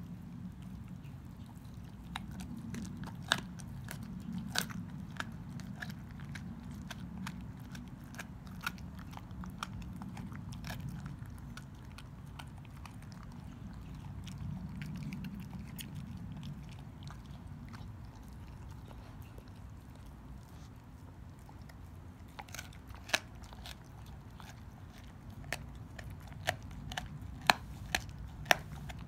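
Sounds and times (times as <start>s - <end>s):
dog chewing bone: 0.0s - 29.0s.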